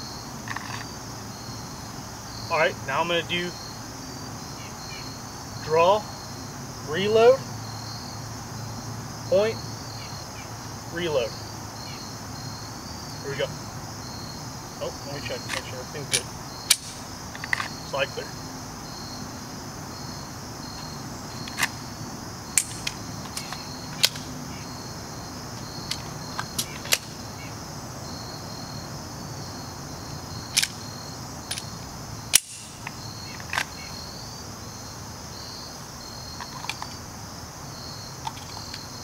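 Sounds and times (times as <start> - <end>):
crickets chirping: 0.0 - 39.0
pistol clicks and clacks: 15.5 - 17.7, 22.6 - 24.3, 30.6 - 30.8, 31.5 - 31.7, 32.3 - 33.7.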